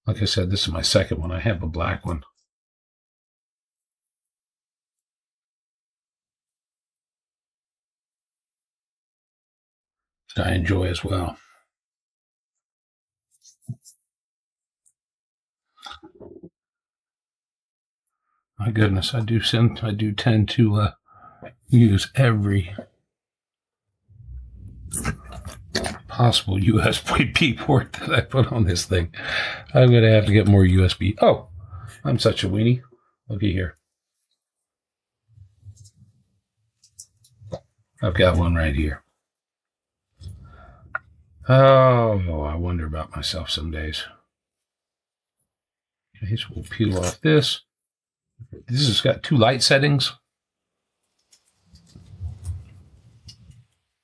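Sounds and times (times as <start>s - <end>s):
cable rustling and scraping: 24.2s - 28.8s, 51.0s - 54.0s.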